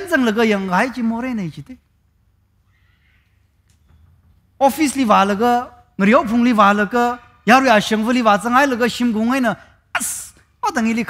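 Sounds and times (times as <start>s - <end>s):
man preaching: 0.0s - 1.8s, 4.6s - 11.0s.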